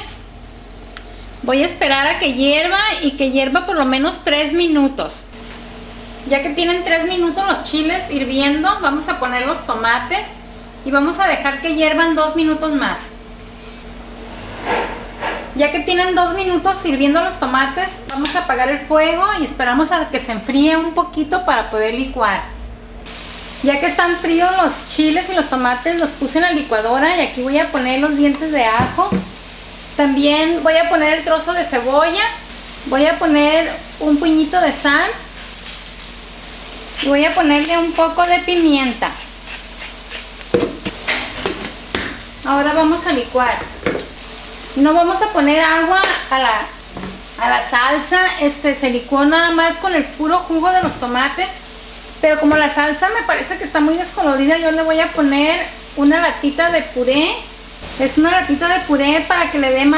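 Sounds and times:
water boiling in a pot: 0.0s - 21.3s, 23.0s - 59.9s
pepper mill grinding: 35.4s - 36.3s, 36.9s - 41.0s.

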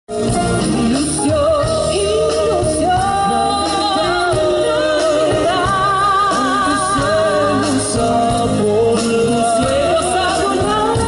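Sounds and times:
live band with singers: 0.1s - 11.0s.

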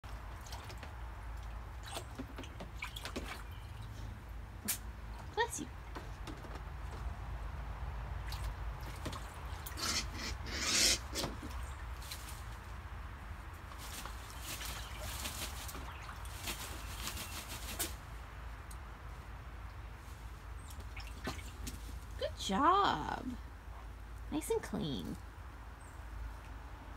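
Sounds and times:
water splashing and dripping: 0.0s - 22.2s.

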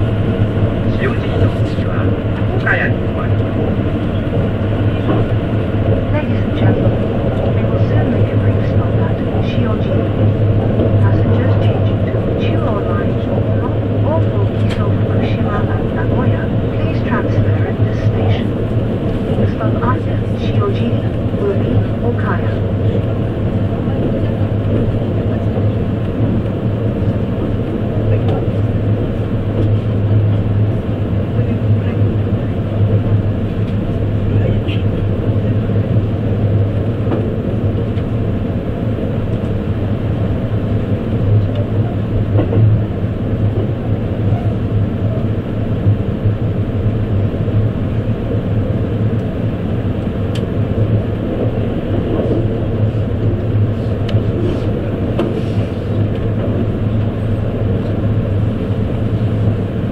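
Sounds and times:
train rumbling along track: 0.0s - 59.9s.

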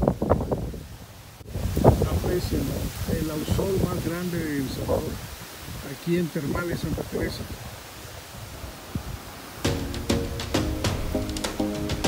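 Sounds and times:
wind rumble on microphone: 0.0s - 9.4s
music with plucked notes: 9.7s - 12.0s.

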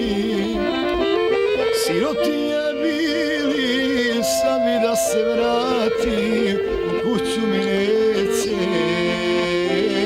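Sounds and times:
accordion folk melody: 0.0s - 10.0s.

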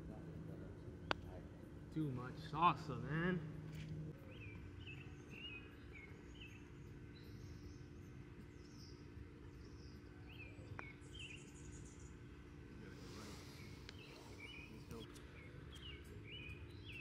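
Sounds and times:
faint low hum: 0.0s - 17.0s
small birds chirping: 0.0s - 17.0s.

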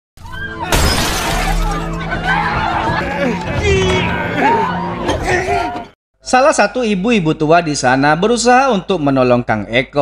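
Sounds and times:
debris falling: 0.7s - 2.0s
glass shattering: 0.7s - 2.0s
voices shouting: 1.4s - 6.0s
film score music: 1.5s - 6.0s.

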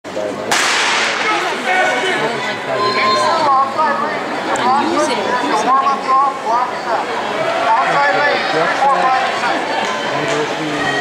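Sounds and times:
starting pistol crack: 0.5s - 1.4s.

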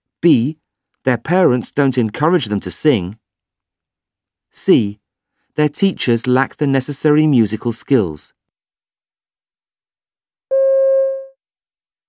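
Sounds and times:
electronic beep: 10.5s - 11.4s.

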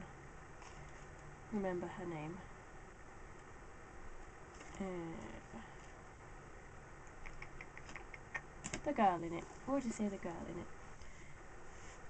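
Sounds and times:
person speaking: 4.6s - 5.9s, 7.4s - 10.8s.

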